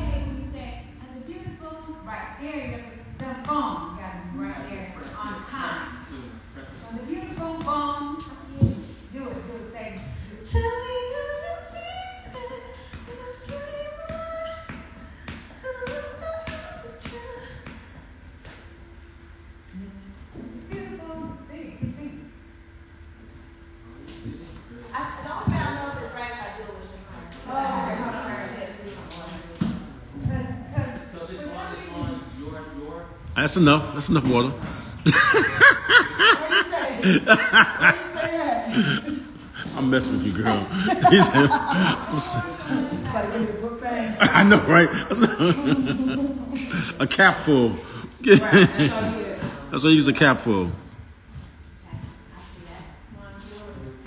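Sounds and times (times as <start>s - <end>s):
woman singing unaccompanied: 7.0s - 18.1s
person laughing: 35.0s - 39.7s, 40.3s - 42.6s, 44.2s - 47.1s, 48.2s - 49.0s.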